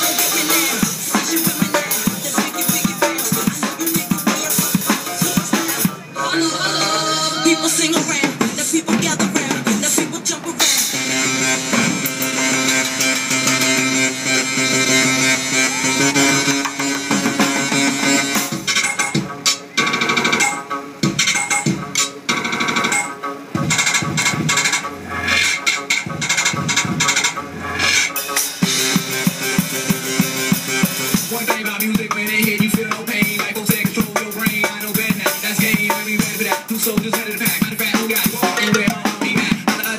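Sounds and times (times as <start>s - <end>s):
backing music from loudspeaker: 0.0s - 39.9s
drum kit playing: 0.0s - 39.9s.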